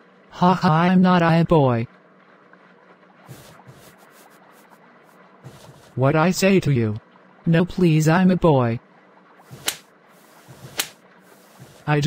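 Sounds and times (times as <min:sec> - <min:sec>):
cartoon face slaps: 0:09.6 - 0:09.8, 0:10.7 - 0:11.0.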